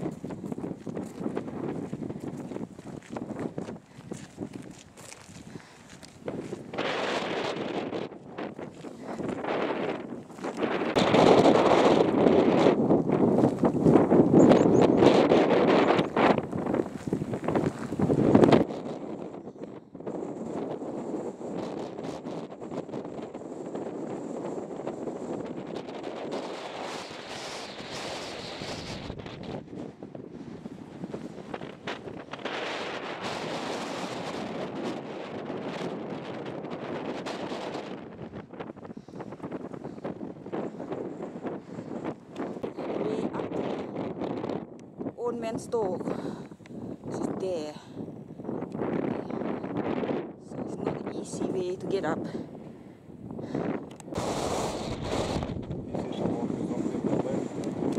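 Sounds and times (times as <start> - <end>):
strong wind buffeting microphone: 0.0 - 57.9.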